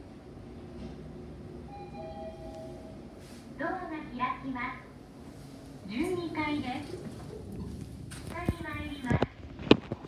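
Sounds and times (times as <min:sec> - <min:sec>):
elevator travelling hum: 0:00.0 - 0:10.0.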